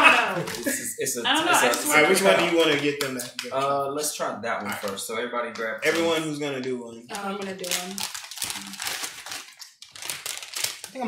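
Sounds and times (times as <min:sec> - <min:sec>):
chip bags crinkling: 0:07.1 - 0:11.0.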